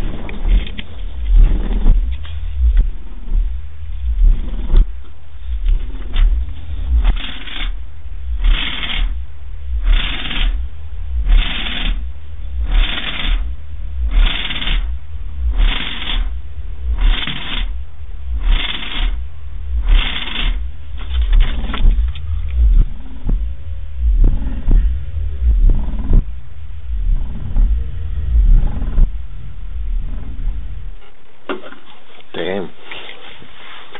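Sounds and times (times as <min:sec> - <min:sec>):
hissing pulse: 0:00.0 - 0:31.3
deep bass rumble: 0:00.0 - 0:32.8
scattered irregular noises: 0:00.0 - 0:33.9.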